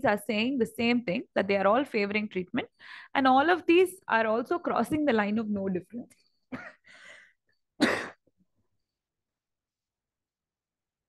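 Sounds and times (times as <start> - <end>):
woman clearing her throat: 7.8 - 8.3
woman coughing: 7.8 - 8.3.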